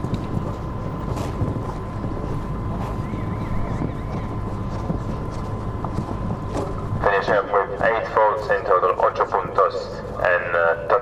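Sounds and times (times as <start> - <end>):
wind rumbling on microphone: 0.0 - 10.2.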